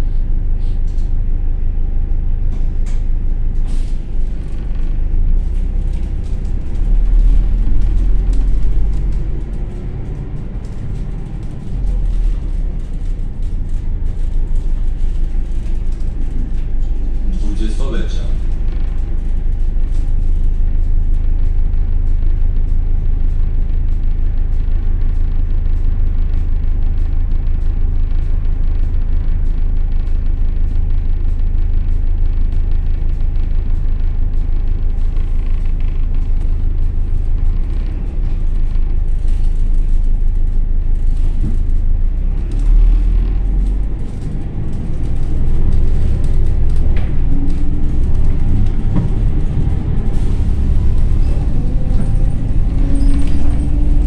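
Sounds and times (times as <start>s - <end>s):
rising whine: 0.0s - 21.9s, 32.8s - 54.0s
bus engine drone: 0.0s - 54.0s
road rumble: 0.0s - 54.0s.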